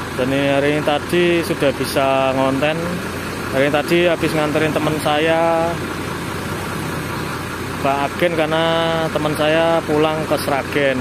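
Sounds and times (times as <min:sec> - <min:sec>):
diesel engine idling: 0:00.0 - 0:11.0.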